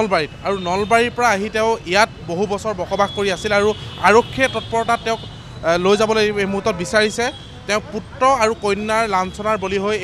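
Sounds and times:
people talking: 0.0 - 10.0
street traffic: 0.0 - 10.0.

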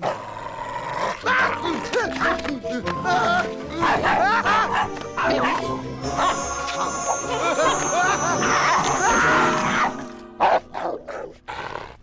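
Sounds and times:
background music: 0.9 - 12.0.

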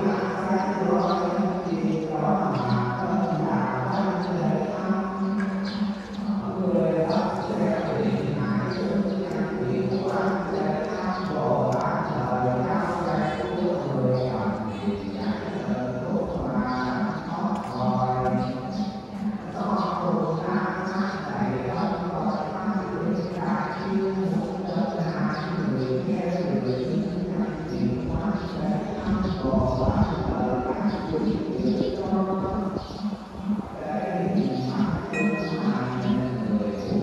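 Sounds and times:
voices chanting slowly: 0.0 - 37.0
person chanting long notes: 35.1 - 36.8.

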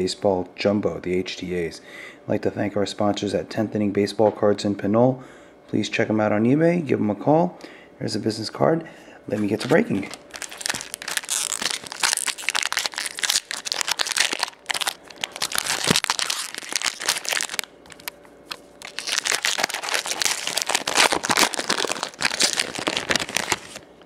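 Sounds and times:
foil wrappers crinkling and tearing: 9.4 - 24.0.

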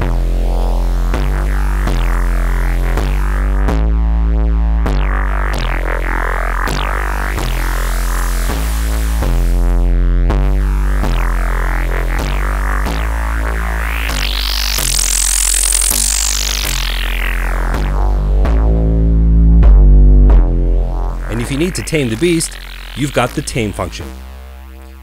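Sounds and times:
distorted synth bass riff: 0.0 - 25.0.

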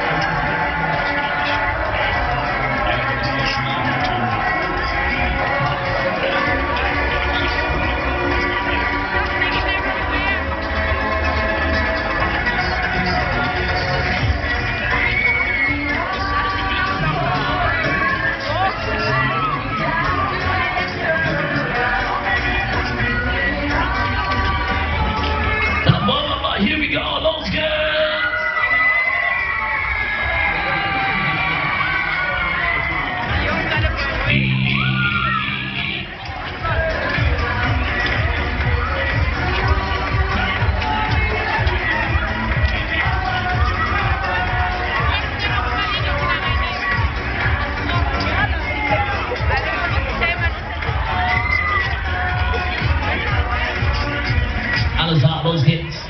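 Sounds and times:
crowd noise: 0.0 - 56.0
funfair ride music: 0.0 - 56.0
people shrieking and shouting: 0.0 - 56.0
steady held tones: 34.3 - 36.3.

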